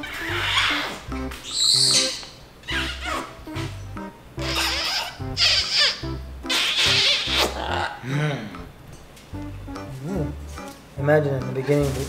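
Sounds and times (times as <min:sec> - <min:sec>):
parrot screech: 0:00.0 - 0:03.3, 0:04.4 - 0:08.0
background music with bass line: 0:09.4 - 0:12.0.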